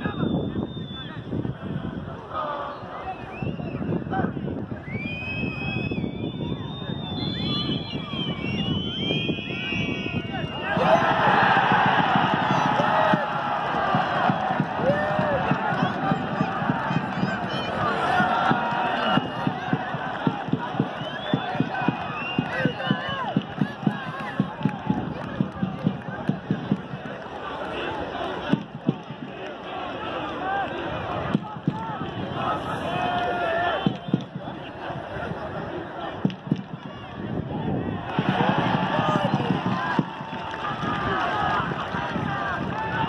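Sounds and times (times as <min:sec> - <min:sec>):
crowd murmur and calling out: 0:00.0 - 0:43.0
high thin whistle tones: 0:04.8 - 0:10.7
people shouting: 0:10.6 - 0:20.8.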